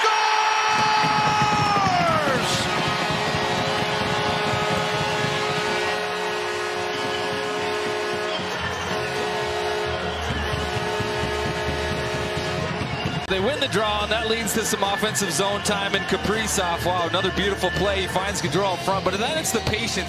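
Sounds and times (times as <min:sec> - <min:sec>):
crowd cheering: 0:00.0 - 0:20.0
arena goal horn: 0:01.8 - 0:14.2
music over sound system: 0:01.9 - 0:20.0.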